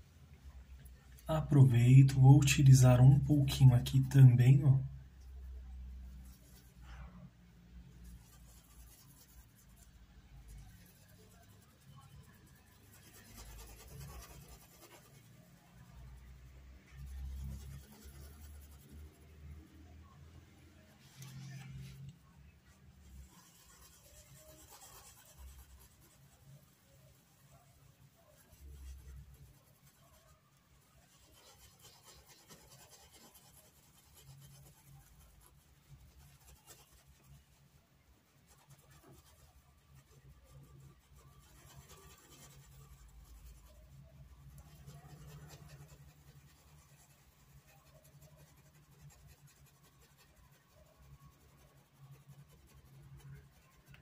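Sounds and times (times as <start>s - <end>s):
paintbrush rubbing over cloth: 0.0s - 54.0s.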